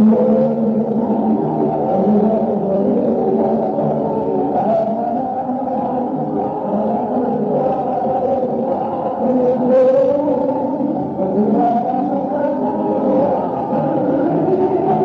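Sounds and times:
crowd noise: 0.0 - 15.0.

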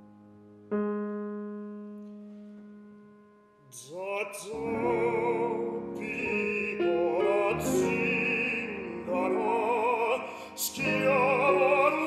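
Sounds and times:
piano chord ringing: 0.0 - 3.7.

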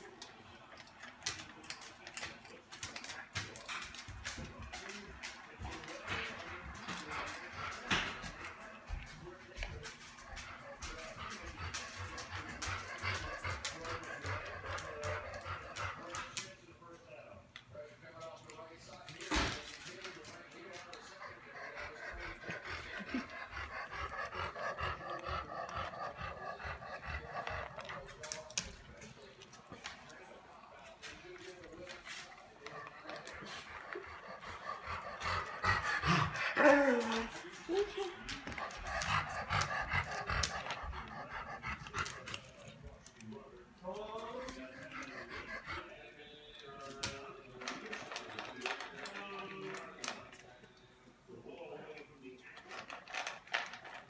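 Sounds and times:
dog panting: 0.0 - 50.4.

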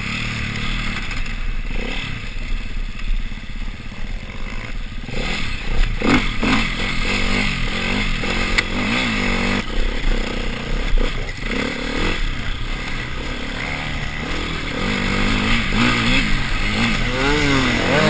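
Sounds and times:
motorcycle engine revving: 0.0 - 18.0
motorcycle clattering over rough ground: 5.7 - 18.0.

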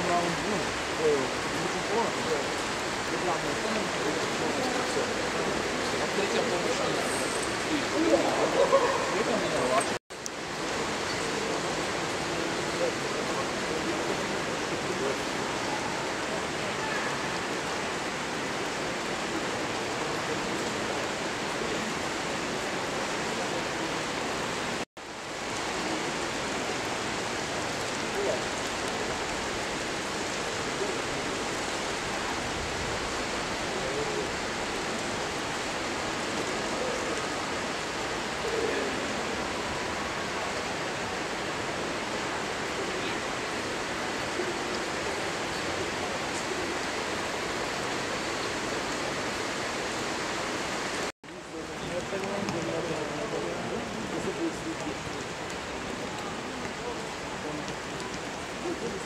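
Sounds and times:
steady rain: 0.0 - 59.0.

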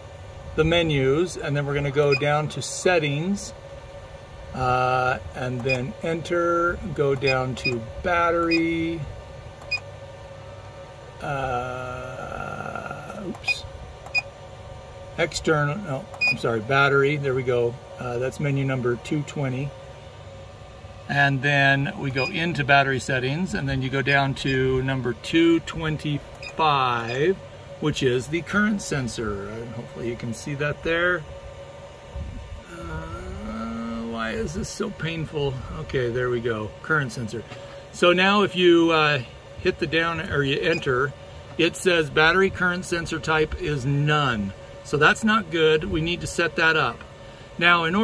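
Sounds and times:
man's drawn-out hesitation sound: 21.1 - 31.4, 32.6 - 47.0.

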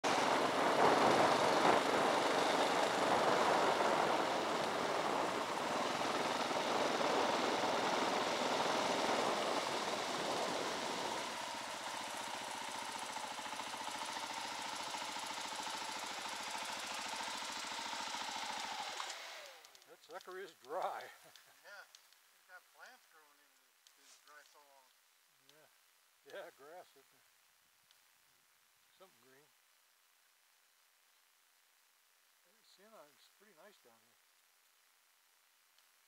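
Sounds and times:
dirt bike engine running: 0.0 - 19.9
wind rush on microphone: 0.1 - 11.2.

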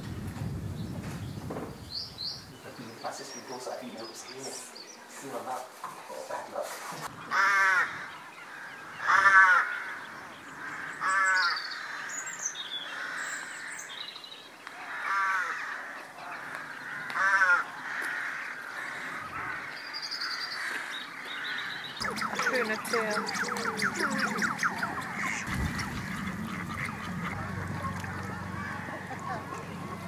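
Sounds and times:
small birds chirping: 0.1 - 14.9, 15.6 - 30.0
bird calling loudly: 16.4 - 30.0.

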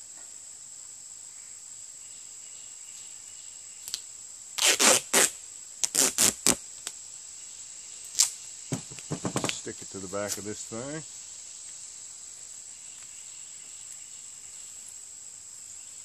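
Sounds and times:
high-pitched insect drone: 0.8 - 16.0
duct tape ripping off roll: 4.6 - 7.0, 8.1 - 9.6.

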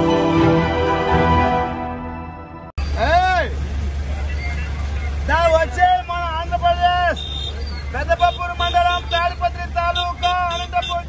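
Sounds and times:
low vehicle engine rumble: 2.8 - 11.0
man calling out: 8.0 - 11.0.

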